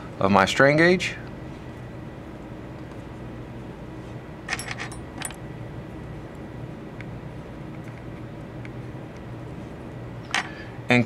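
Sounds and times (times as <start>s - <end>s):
low steady hum: 0.0s - 11.0s
metal tool clinking: 4.5s - 5.4s.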